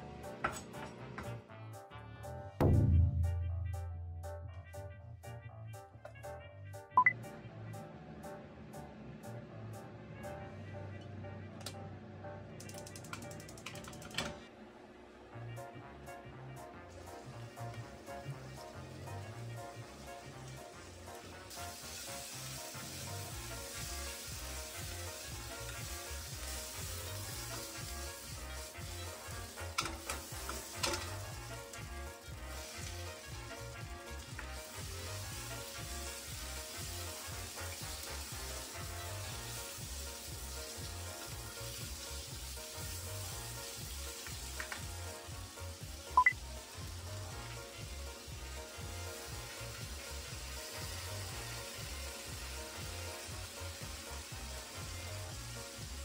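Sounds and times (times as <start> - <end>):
vegetables sizzling in a pan: 17.0 - 56.0.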